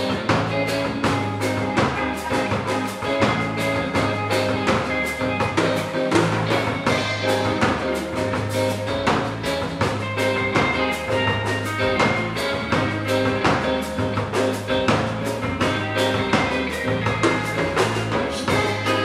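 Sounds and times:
bass guitar: 0.0 - 19.0
drum kit beat: 0.0 - 19.0
electric guitars: 0.0 - 19.0.

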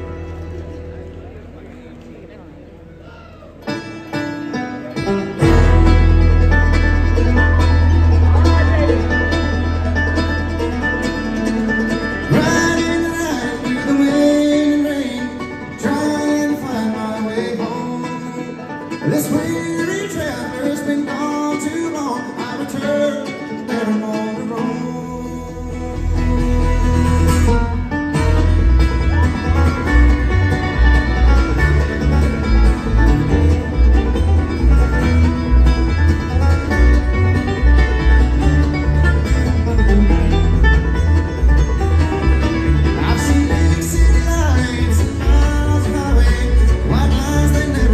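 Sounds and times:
acoustic guitar: 2.9 - 47.9
banjo picking: 3.6 - 47.9
deep bass: 5.4 - 13.4, 25.6 - 47.9.

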